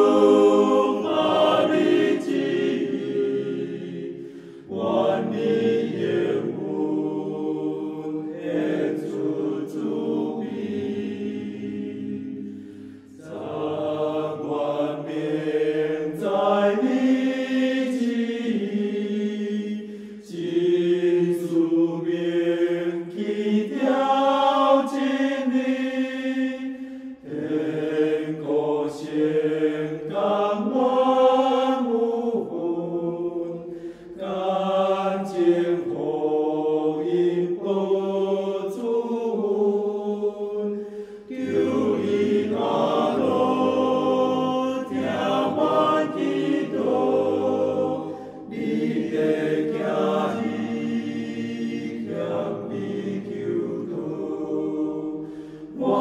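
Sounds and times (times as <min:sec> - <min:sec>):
choir singing a hymn: 0:00.0 - 0:56.0.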